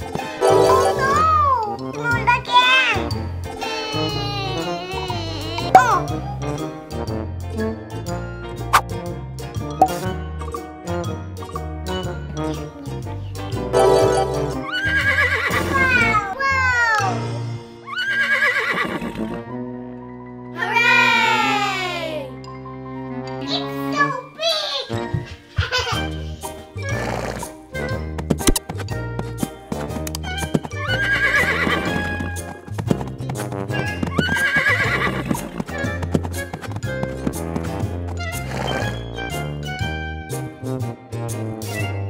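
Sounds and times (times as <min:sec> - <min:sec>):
background music: 0:00.0 - 0:42.0
horse whinny: 0:14.6 - 0:16.1, 0:17.9 - 0:19.4, 0:30.8 - 0:32.3, 0:34.1 - 0:35.5.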